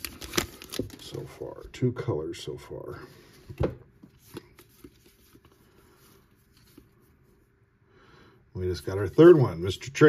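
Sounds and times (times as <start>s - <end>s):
trading cards flipping: 4.0s - 7.0s.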